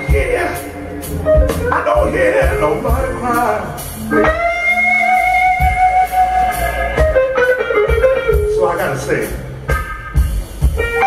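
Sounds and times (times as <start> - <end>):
bass: 0.0 - 11.0
electric guitar: 0.0 - 11.0.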